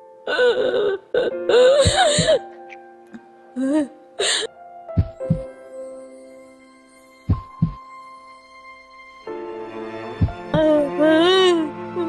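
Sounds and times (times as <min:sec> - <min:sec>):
woman sobbing: 0:00.3 - 0:02.6, 0:03.6 - 0:04.5
heartbeat thumps: 0:05.0 - 0:05.5, 0:07.3 - 0:07.8, 0:10.2 - 0:10.6.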